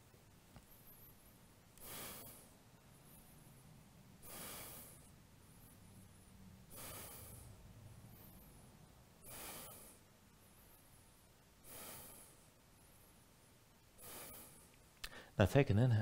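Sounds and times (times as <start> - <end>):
man breathing: 0.7 - 15.4.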